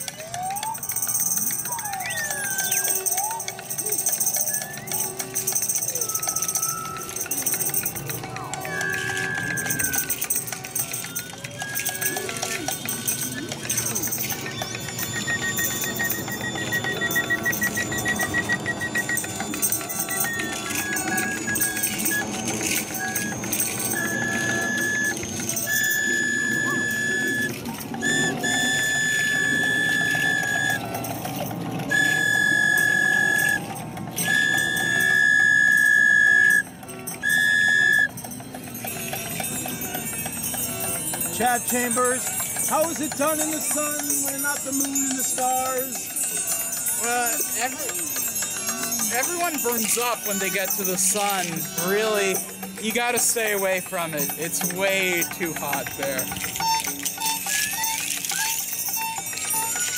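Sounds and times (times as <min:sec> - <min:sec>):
hand drums: 0:00.0 - 0:34.5, 0:37.9 - 0:59.9
loud high steady tone: 0:00.0 - 0:59.9
small percussion: 0:00.0 - 0:59.9.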